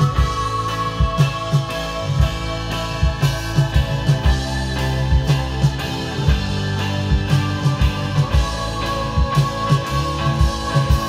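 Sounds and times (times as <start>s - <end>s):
bass: 0.0s - 11.0s
drum kit: 0.0s - 11.0s.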